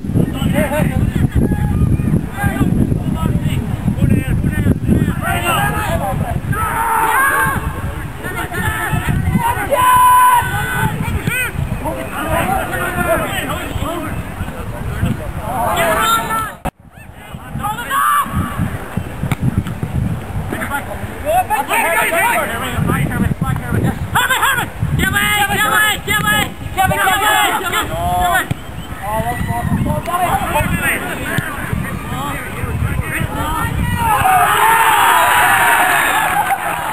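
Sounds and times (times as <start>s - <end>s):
wind rumble on microphone: 0.0s - 21.5s, 22.3s - 36.9s
men shouting: 5.2s - 10.8s, 24.2s - 28.5s, 33.3s - 36.9s.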